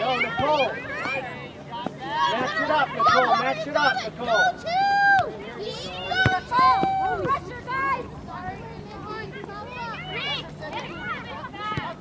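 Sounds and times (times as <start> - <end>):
spectators shouting encouragement: 2.0 - 8.2.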